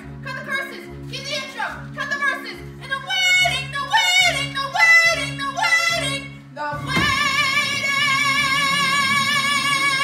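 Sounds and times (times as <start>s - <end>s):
girl singing with vibrato: 2.8s - 10.0s.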